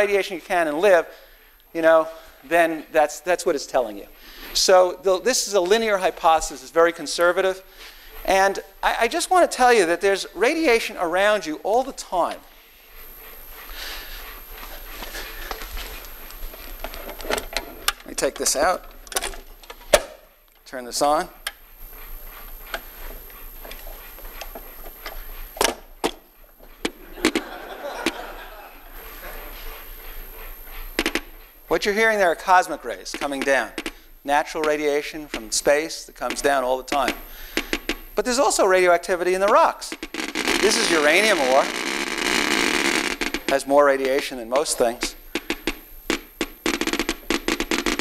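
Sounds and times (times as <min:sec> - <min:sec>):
geiger counter clicking: 0:08.2 - 0:48.0.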